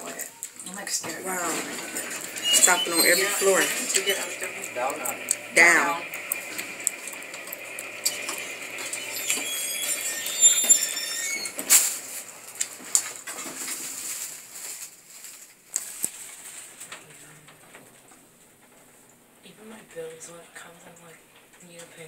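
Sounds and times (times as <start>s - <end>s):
high squeaks: 1.2s - 12.7s.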